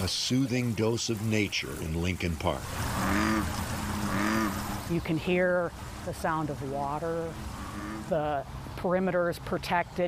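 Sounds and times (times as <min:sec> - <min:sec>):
trickling water: 0:00.0 - 0:10.0
frog croaking: 0:02.8 - 0:04.9, 0:07.5 - 0:08.2.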